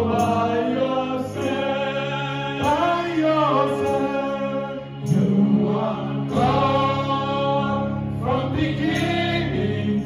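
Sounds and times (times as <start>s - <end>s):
singers singing gospel song: 0.0s - 10.0s.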